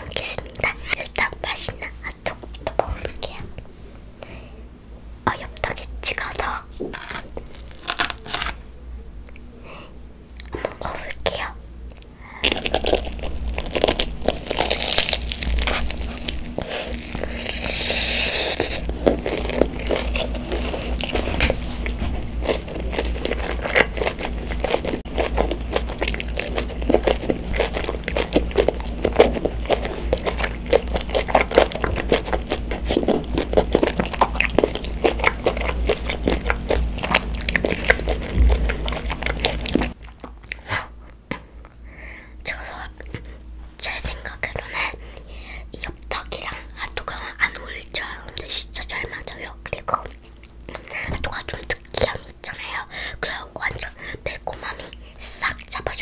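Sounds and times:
crunchy chewing: 5.5s - 8.6s, 10.4s - 41.8s.

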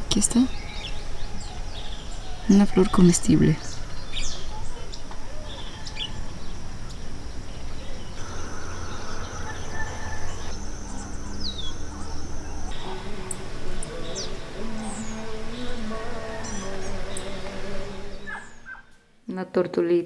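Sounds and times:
birds chirping and whistling: 0.2s - 19.0s
lower drawn-out calls: 0.5s - 19.1s
low rumble: 6.2s - 18.7s.

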